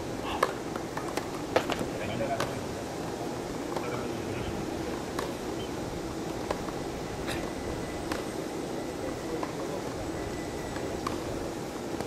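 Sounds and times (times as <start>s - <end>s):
steady background noise: 0.0s - 12.0s
tennis ball struck by rackets: 0.4s - 2.5s.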